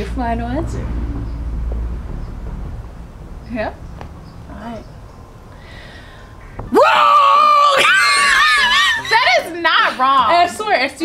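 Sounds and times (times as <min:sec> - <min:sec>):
low outdoor rumble: 0:00.0 - 0:09.3.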